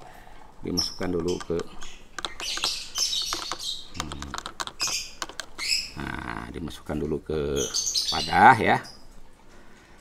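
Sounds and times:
small birds chirping: 0.6s - 9.3s
plastic vial clicking: 1.1s - 5.7s.

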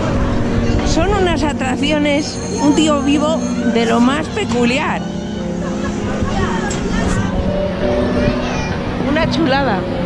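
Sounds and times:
carousel rumble: 0.0s - 10.0s
people's voices: 0.0s - 10.0s
long held tones stepping in pitch: 1.4s - 6.7s.

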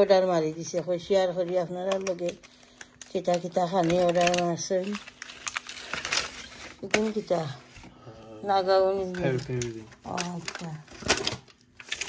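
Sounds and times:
foil tray crinkling: 0.0s - 7.8s, 8.8s - 12.0s.

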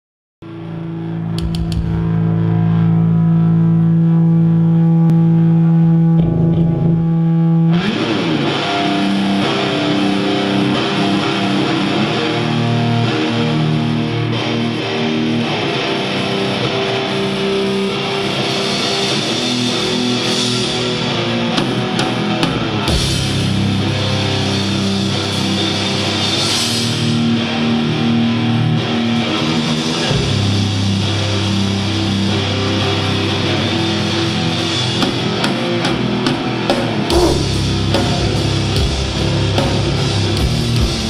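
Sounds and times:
distorted electric guitar chord: 0.4s - 41.0s
metal band playing: 0.5s - 41.0s.

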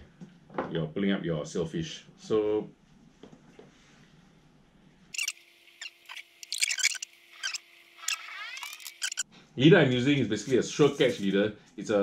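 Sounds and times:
fishing reel clicking: 5.2s - 9.2s.

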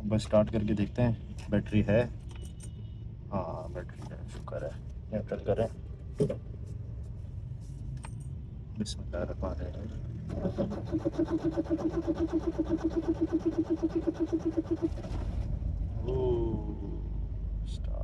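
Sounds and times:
starter motor cranking engine: 10.3s - 15.5s.

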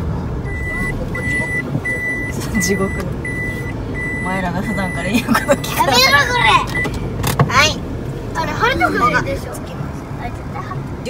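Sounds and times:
voices in a car: 0.0s - 11.0s.

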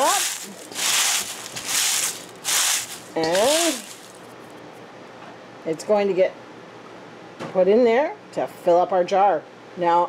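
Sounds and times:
dried leaves crunching in metal bowl: 0.0s - 4.2s.

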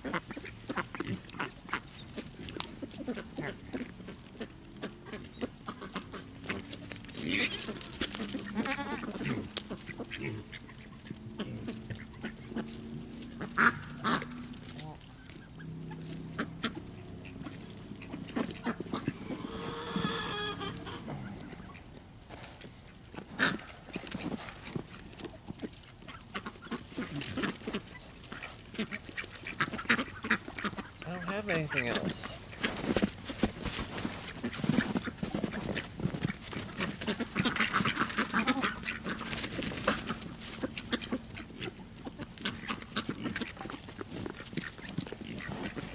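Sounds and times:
animals crunching corn: 0.0s - 45.9s
low animal calls: 0.7s - 22.4s.

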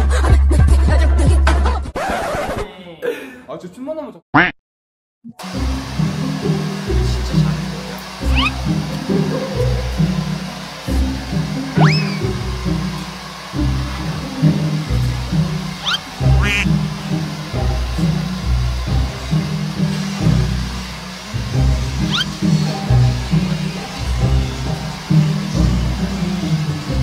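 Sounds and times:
rising whistle-like glides: 8.2s - 8.7s, 11.8s - 14.9s, 15.7s - 16.7s, 22.0s - 22.6s.

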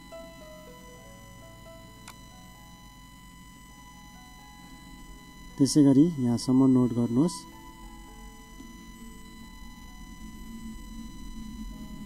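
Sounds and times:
electrical hum: 0.0s - 12.0s
faint high whine: 0.0s - 12.0s
soft mellow music: 0.0s - 12.0s.

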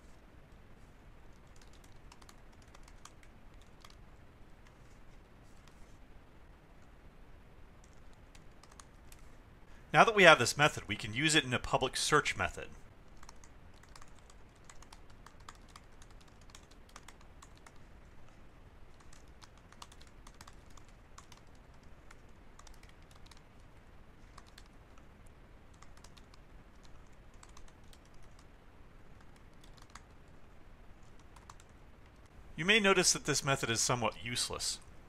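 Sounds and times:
faint typing on keyboard: 0.0s - 6.0s, 7.6s - 9.4s, 12.4s - 34.9s.

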